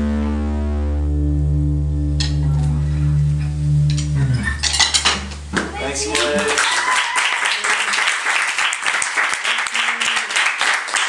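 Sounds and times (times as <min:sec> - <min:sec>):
band playing low chord: 0:00.0 - 0:06.3.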